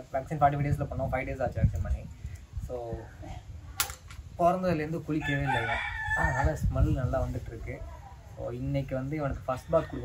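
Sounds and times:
man talking: 0.0 - 3.2, 4.3 - 10.0
rooster crowing: 5.2 - 6.6.

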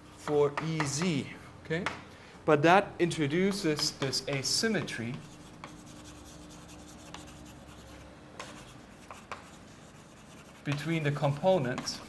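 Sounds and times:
chalk tapping on board: 3.4 - 12.0
chalk scratching on blackboard: 3.5 - 12.0.

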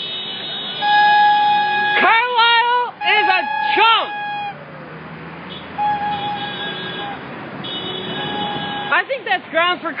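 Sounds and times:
street traffic rumble: 0.0 - 10.0
long held high tones: 0.8 - 4.6, 5.8 - 7.2.

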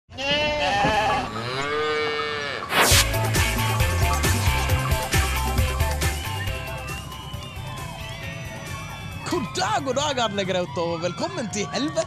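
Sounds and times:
sheep bleating: 0.1 - 2.7.

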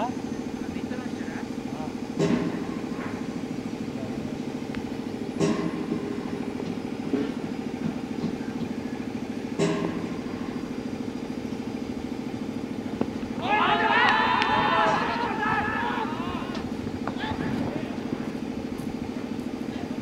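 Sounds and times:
engine idling: 0.0 - 20.0
sharp knocks: 2.2 - 3.4, 5.4 - 8.8, 9.5 - 10.3.

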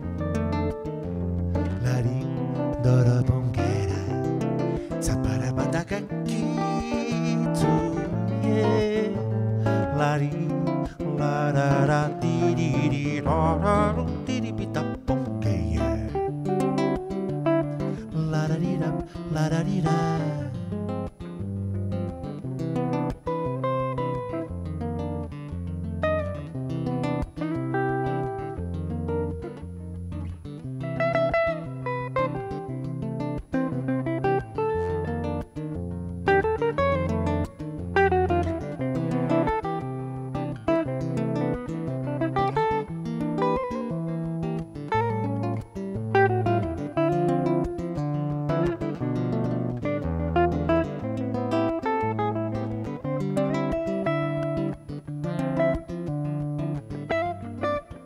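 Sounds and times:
acoustic guitar strumming chords: 0.0 - 58.0
electric guitar melody: 0.0 - 58.0.

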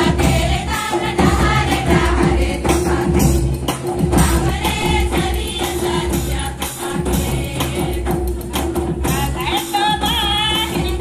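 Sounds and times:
group singing in chorus: 0.0 - 9.2
jingling percussion: 0.0 - 11.0
steady drum beat: 0.0 - 11.0.

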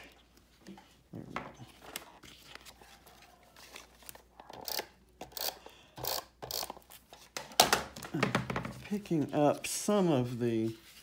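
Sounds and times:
paper rustling and scraping: 0.0 - 4.4, 8.8 - 11.0.

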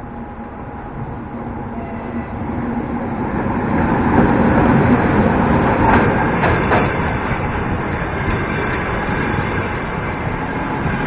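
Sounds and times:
electric locomotive running: 0.0 - 11.0.

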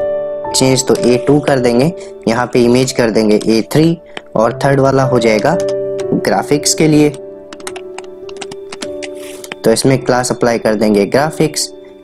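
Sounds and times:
background music: 0.0 - 12.0
keyboard typing: 5.2 - 9.8.

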